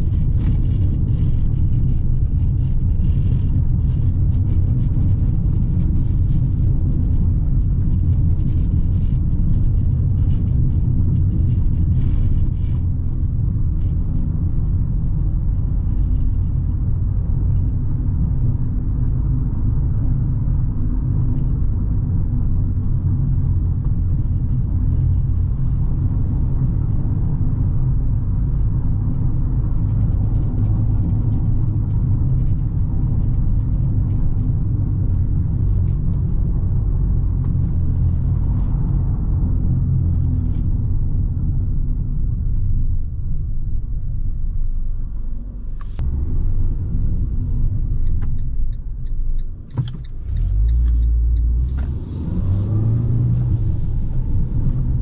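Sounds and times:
car tyres rumbling on cobblestones: 0.0 - 55.0.

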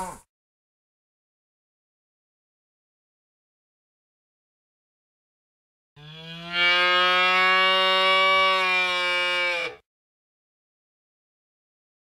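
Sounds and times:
bull mooing: 6.0 - 9.8.

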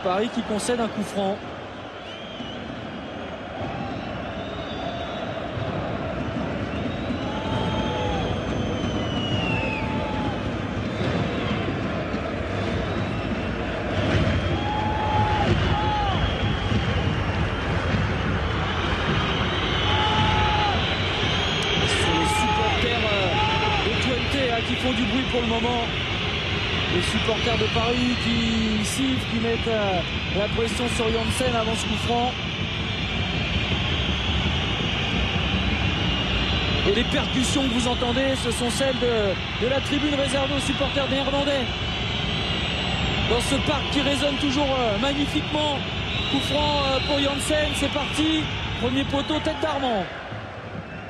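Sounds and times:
drumming: 0.1 - 51.0.

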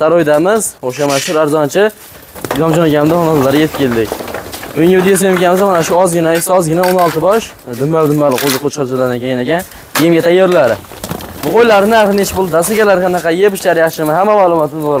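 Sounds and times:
man talking: 0.0 - 15.0.

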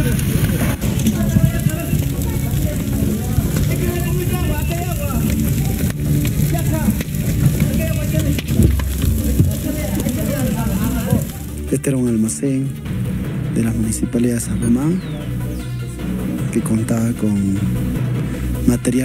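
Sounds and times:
fire crackling and popping: 0.0 - 19.0
people's voices: 0.0 - 19.0.

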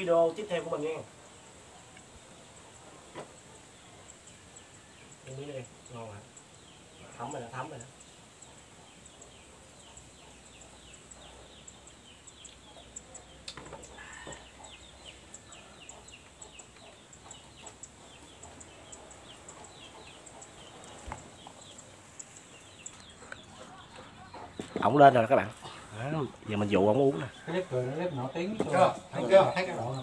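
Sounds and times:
birds chirping: 0.0 - 30.0.

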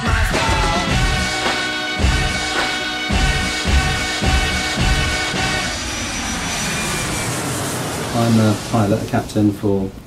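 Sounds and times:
background music with a beat: 0.0 - 5.7
jet airliner engines: 2.4 - 10.0.

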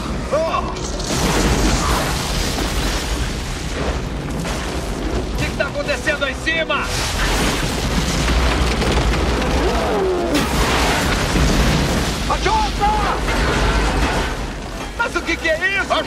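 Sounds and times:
rock and debris erupting: 0.8 - 16.0
people shouting: 9.4 - 10.9.

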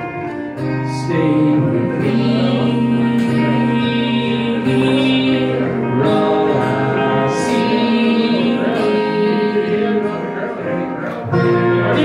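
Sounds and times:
acoustic guitar: 0.0 - 12.0
electric guitar: 0.0 - 12.0
man singing: 0.0 - 12.0.

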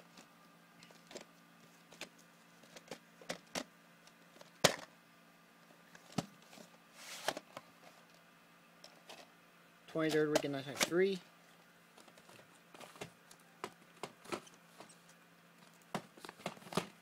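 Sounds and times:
rustling scrape: 6.4 - 8.1.

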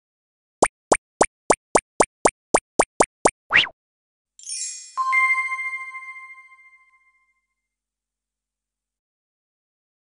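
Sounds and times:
cartoon rising bloop pops: 0.6 - 3.8
cartoon swoop rising and falling: 3.5 - 3.8.

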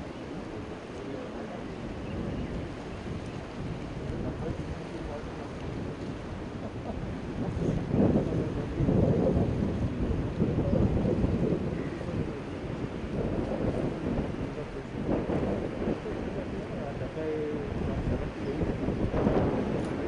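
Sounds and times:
river rushing: 0.0 - 20.0
wind buffeting microphone: 0.0 - 20.0.

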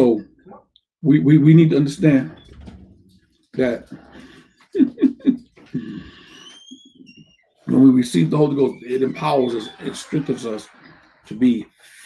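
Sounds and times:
man laughing: 4.0 - 6.2, 9.0 - 11.6.

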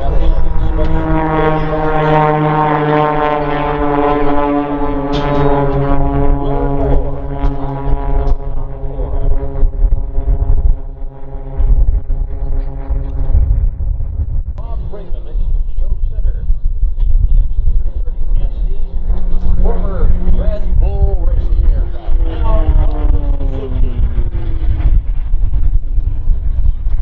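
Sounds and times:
propeller planes droning overhead: 0.0 - 27.0
wind buffeting microphone: 0.0 - 27.0.

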